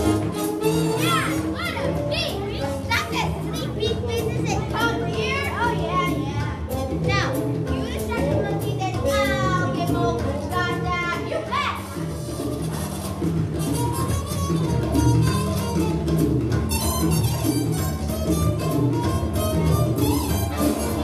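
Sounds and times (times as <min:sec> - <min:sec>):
music with steady bass line: 0:00.0 - 0:21.0
children shouting and whooping: 0:00.7 - 0:06.4, 0:08.0 - 0:12.0, 0:19.5 - 0:21.0.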